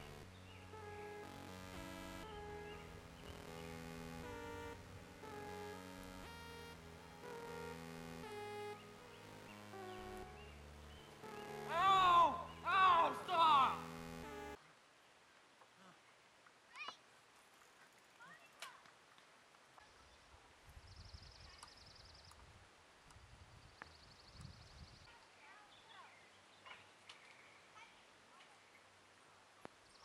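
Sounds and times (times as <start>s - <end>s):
rapid high ticking trill: 0.0s - 14.6s.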